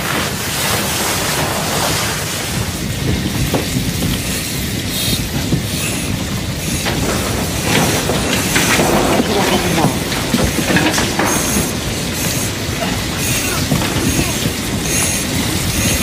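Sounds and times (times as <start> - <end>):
building fire crackling: 0.0 - 16.0.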